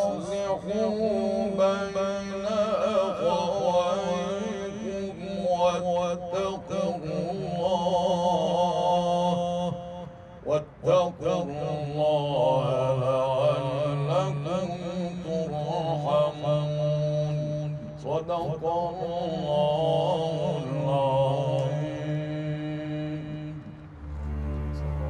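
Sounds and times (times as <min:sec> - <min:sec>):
man chanting melodic recitation: 0:00.0 - 0:25.0.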